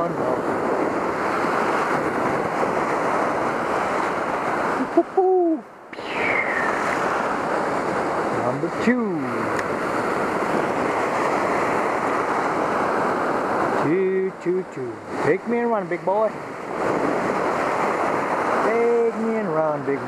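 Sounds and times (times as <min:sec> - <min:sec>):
surf breaking over rocks: 0:00.0 - 0:20.0.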